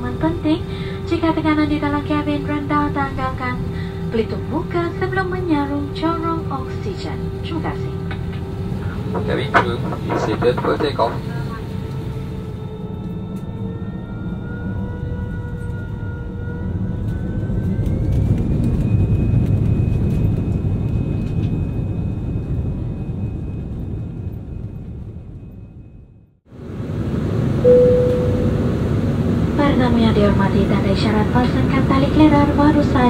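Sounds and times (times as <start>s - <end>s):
jet engines whining: 0.0s - 25.3s, 26.6s - 33.0s
cabin hum: 27.2s - 33.0s
cabin chime: 27.7s - 28.7s.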